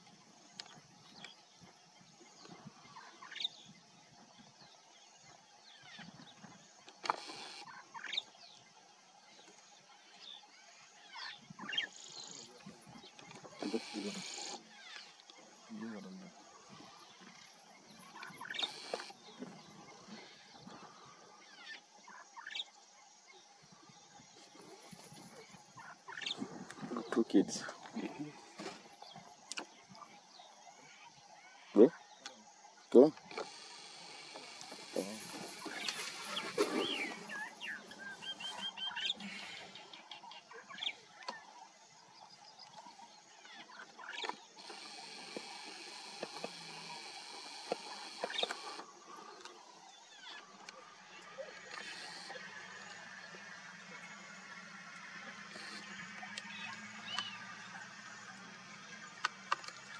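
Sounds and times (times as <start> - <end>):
birds whistling and trilling: 2.4 - 3.8, 5.3 - 8.6, 10.2 - 15.5, 16.6 - 22.8, 33.0 - 59.9.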